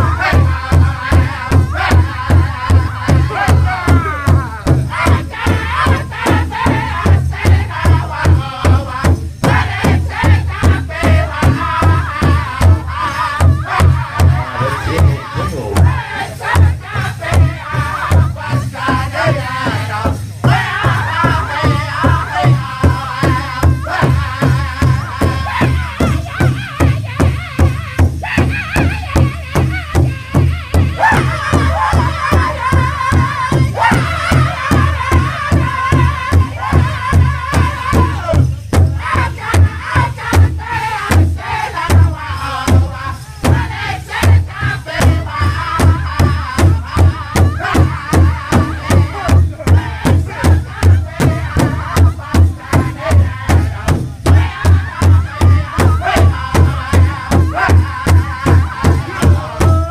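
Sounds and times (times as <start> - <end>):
group singing in high voices: 0.0 - 59.9
large drum steady beat: 0.0 - 59.9.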